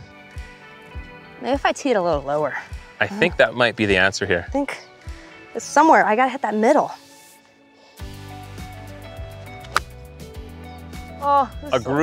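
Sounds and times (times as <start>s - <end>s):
background music with beat: 0.0s - 5.7s, 6.9s - 12.0s
golf club striking ball: 9.4s - 10.0s.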